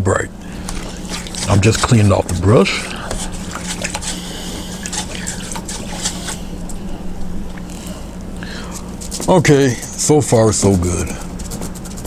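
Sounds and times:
steady low hum: 0.0s - 12.0s
paintbrush swished in liquid: 0.7s - 6.5s.

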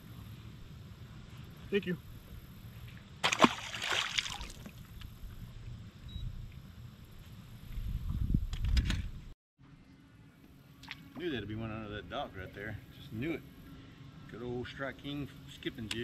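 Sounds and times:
fish splashing into water: 3.2s - 4.8s.

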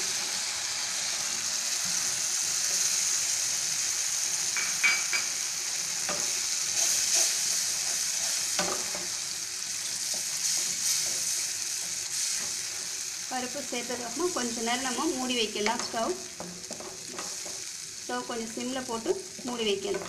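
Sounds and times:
food sizzling in a pan: 0.0s - 20.0s
wooden spatula scraping pan: 6.1s - 9.2s, 10.0s - 13.0s.

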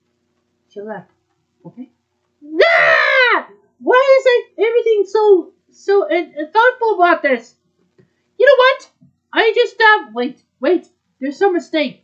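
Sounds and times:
person wailing: 2.4s - 3.5s.

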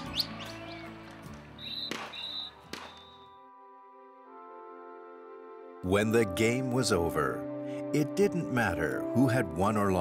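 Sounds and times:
soft background music chords: 0.0s - 10.0s
high whistle blasts: 1.6s - 3.4s.

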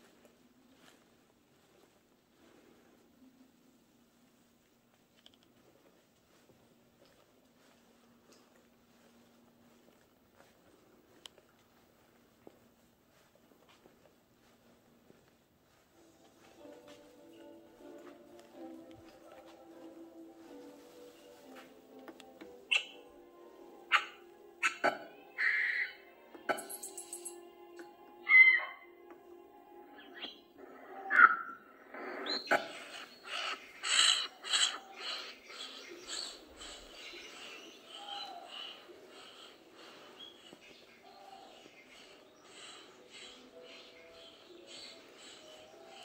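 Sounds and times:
soft sustained music notes: 0.0s - 46.0s
bird calls and squawks: 22.7s - 23.0s, 23.9s - 27.2s, 28.2s - 28.8s, 30.0s - 46.0s.

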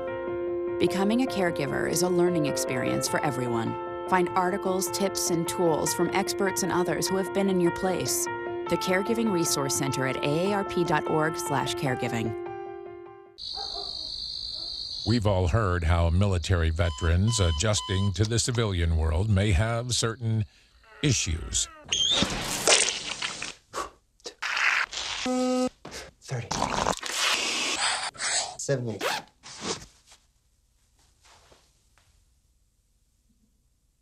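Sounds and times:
crickets chirping: 13.4s - 18.2s
zipper on leather bag: 29.0s - 29.9s.

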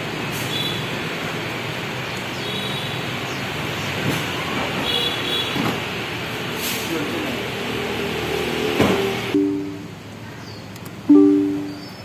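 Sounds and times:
short high beeps: 9.4s - 9.9s, 11.1s - 11.8s.

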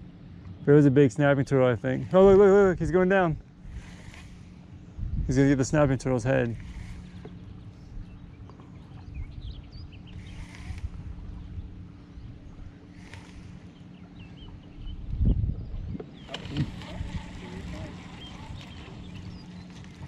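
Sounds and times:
boat engine low hum: 0.0s - 20.0s
water and wind rumble: 0.0s - 20.0s.

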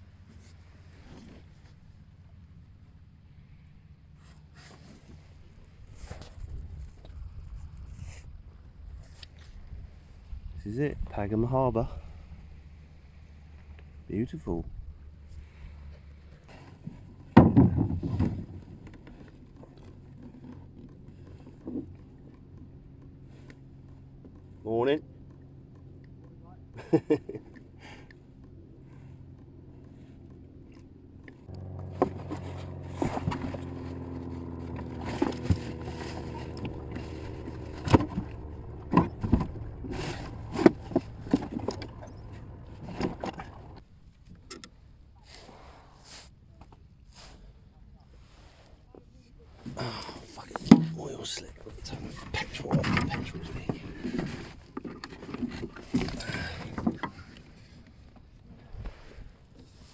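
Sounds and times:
oars and gear clattering: 0.0s - 59.9s
steady low hum: 18.0s - 44.0s.

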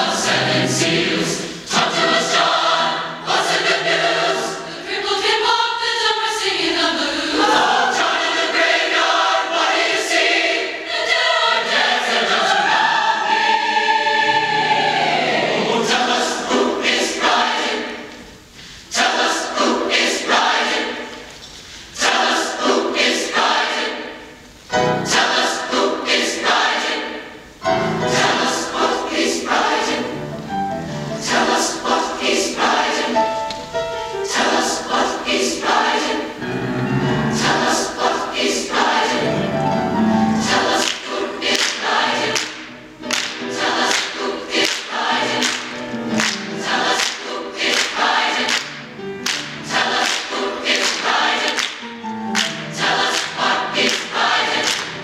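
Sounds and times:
massed choir singing gospel: 0.0s - 55.0s.

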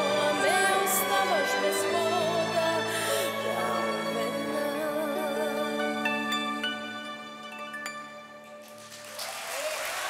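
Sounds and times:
audience applause: 8.6s - 10.0s.

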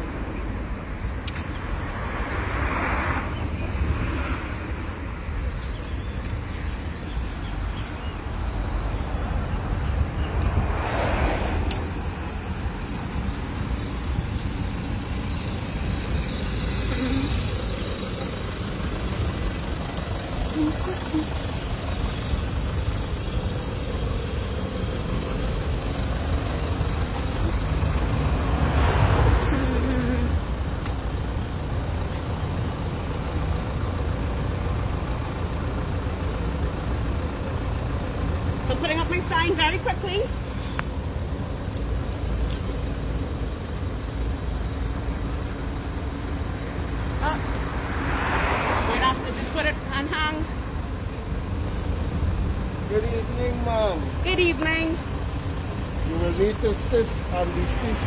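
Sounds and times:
street traffic rumble: 0.0s - 58.0s
vehicle passing: 1.6s - 5.3s, 8.4s - 32.0s, 46.1s - 58.0s.

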